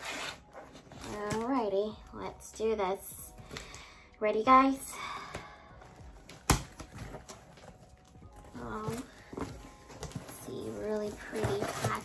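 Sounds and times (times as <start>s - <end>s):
cardboard scraping and tapping: 8.5s - 12.0s.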